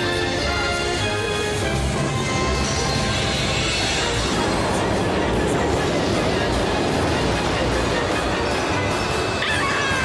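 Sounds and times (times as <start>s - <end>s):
dramatic music: 0.0s - 10.0s
high-pitched shriek: 9.2s - 10.0s.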